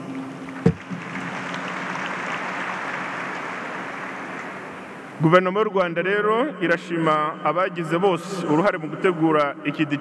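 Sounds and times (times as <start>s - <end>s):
audience applauding: 0.4s - 5.1s.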